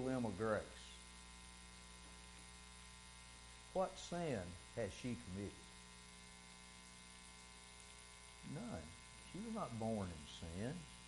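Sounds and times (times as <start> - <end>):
electrical mains hum: 0.0 - 11.0
man speaking: 3.8 - 5.6, 8.4 - 10.9.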